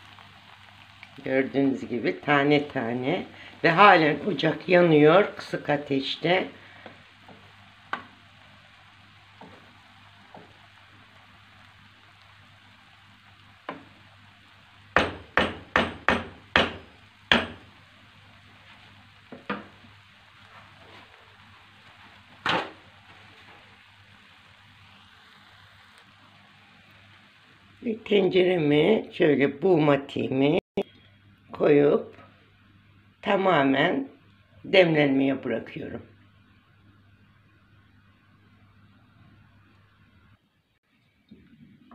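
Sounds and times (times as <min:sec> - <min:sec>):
faint steady hiss: 0:00.0 - 0:41.9
wooden spoon knocking on pan: 0:06.8 - 0:08.2, 0:13.7 - 0:13.9, 0:14.9 - 0:17.7, 0:19.3 - 0:19.8.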